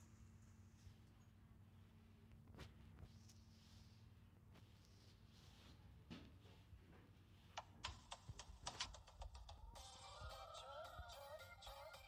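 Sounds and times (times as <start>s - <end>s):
fingertips tapping touchscreen: 7.5s - 9.9s.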